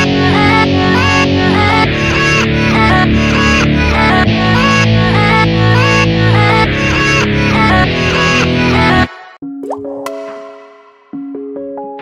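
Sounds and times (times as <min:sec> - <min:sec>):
loud music track: 0:00.0 - 0:09.4.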